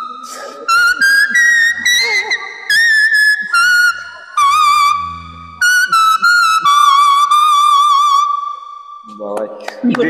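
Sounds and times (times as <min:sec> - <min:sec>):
toy whistle playing a tune: 0:00.7 - 0:08.5.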